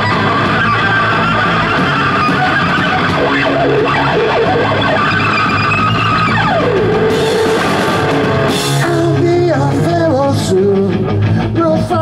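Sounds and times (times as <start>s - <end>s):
bass guitar and drums: 0.0s - 12.0s
distorted electric guitar lead: 0.0s - 12.0s.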